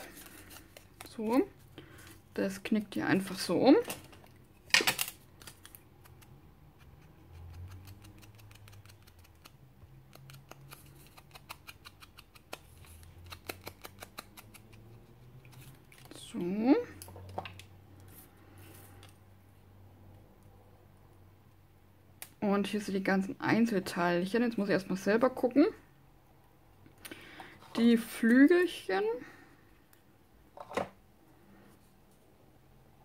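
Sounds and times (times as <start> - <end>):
paper being handled: 0.0 - 1.4.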